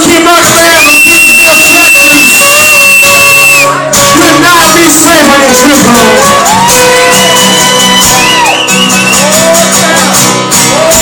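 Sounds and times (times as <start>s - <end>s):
man singing: 0.0s - 6.4s
acoustic guitars strumming: 0.0s - 11.0s.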